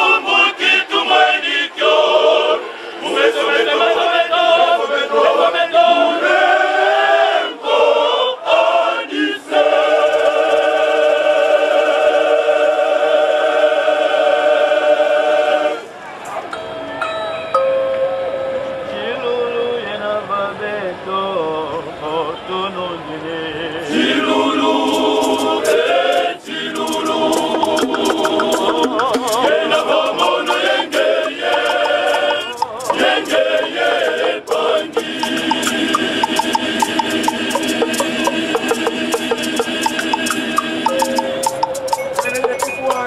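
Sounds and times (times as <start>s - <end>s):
male choir singing a cappella: 0.0s - 15.9s, 19.0s - 42.7s.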